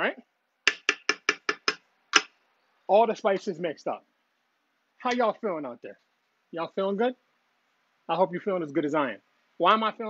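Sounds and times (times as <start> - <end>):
utensil tapping cooking pot: 0.6 - 2.3.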